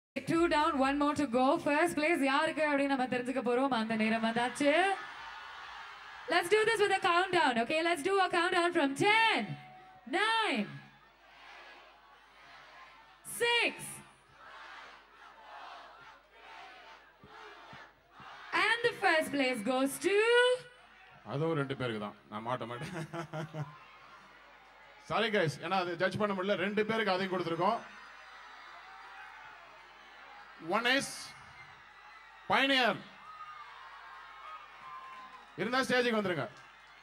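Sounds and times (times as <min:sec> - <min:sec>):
crowd counting down aloud: 0:09.4 - 0:19.4.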